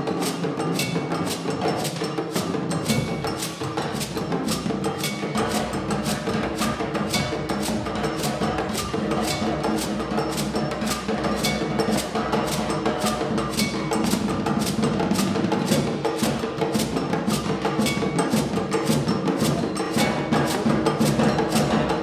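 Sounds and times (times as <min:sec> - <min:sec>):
drums: 0:00.0 - 0:22.0.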